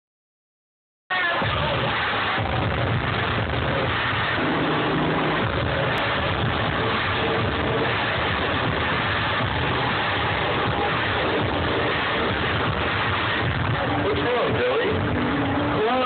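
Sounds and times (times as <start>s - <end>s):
distorted video audio over sound system: 1.1s - 16.0s.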